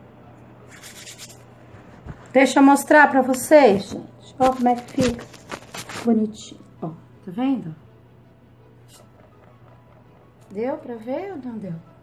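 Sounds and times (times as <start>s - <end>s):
hands brushing bread dough: 0.7s - 2.7s.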